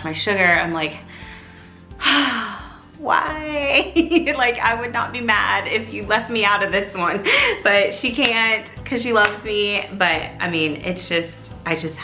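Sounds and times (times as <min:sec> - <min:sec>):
woman talking: 0:00.0 - 0:01.1, 0:02.0 - 0:12.0
woman sighing: 0:02.0 - 0:02.9.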